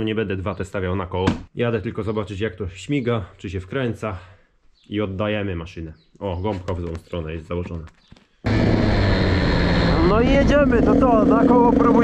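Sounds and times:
dirt bike engine running: 8.5s - 12.0s.

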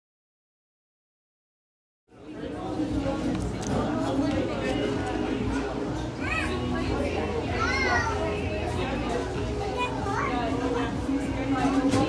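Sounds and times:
indistinct background voices: 2.1s - 12.0s
child calling: 7.5s - 8.4s.

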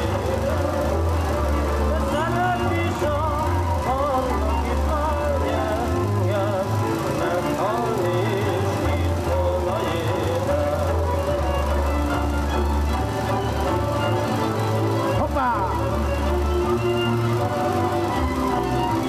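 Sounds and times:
folk dance music: 0.0s - 19.0s.

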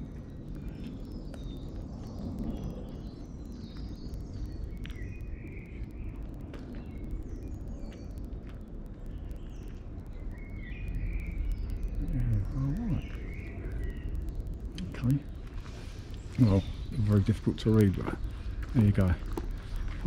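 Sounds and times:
low outdoor rumble: 0.0s - 20.0s
small birds chirping: 0.0s - 20.0s.

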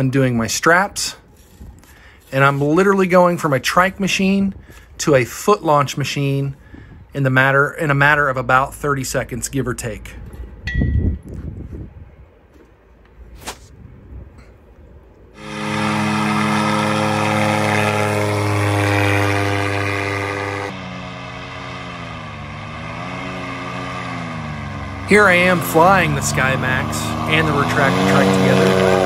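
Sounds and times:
paramotor engine running: 15.4s - 29.0s.

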